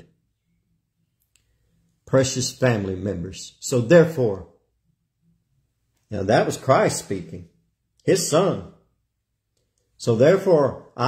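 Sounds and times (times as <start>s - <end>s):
faint low hum: 0.0s - 11.0s
faint click: 1.2s - 2.0s.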